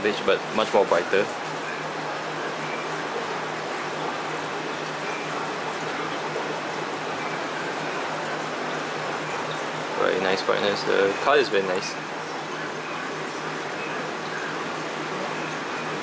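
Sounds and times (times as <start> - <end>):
faint low pump hum: 0.0 - 16.0
water rushing and trickling: 0.0 - 16.0.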